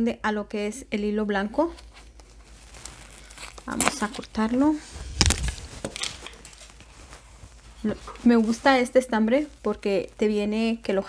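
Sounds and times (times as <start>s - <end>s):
brief rustle: 1.8s - 8.7s.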